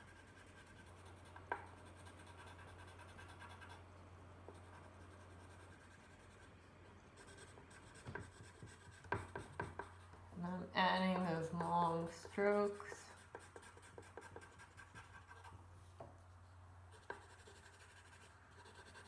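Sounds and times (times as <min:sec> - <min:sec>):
pencil scratching across paper: 0:00.0 - 0:03.8, 0:04.5 - 0:10.2, 0:11.4 - 0:15.6, 0:16.9 - 0:19.0
faint steady hum: 0:00.0 - 0:19.0.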